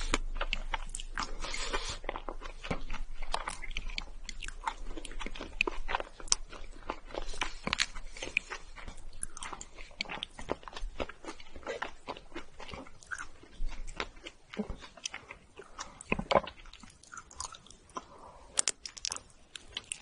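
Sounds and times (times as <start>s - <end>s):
chewing: 0.0s - 20.0s.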